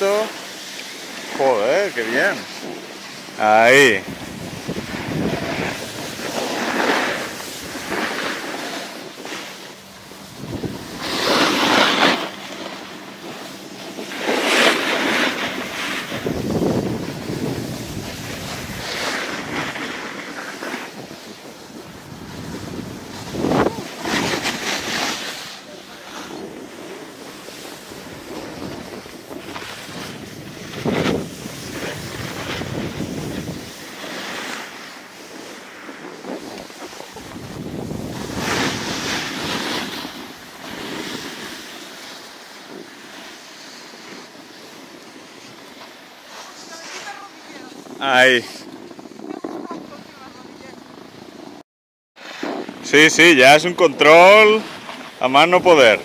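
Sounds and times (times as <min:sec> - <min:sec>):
ski edges scraping on snow: 0:00.0 - 0:51.6, 0:52.2 - 0:56.0
wind rushing over microphone: 0:01.3 - 0:42.0, 0:46.5 - 0:51.6.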